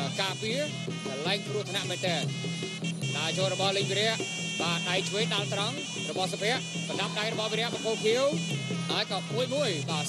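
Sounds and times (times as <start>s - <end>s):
reed pipe nasal melody: 0.0s - 10.0s.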